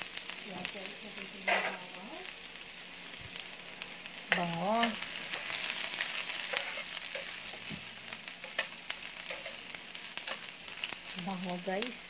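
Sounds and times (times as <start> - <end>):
garlic sizzling in hot oil: 0.0 - 12.0.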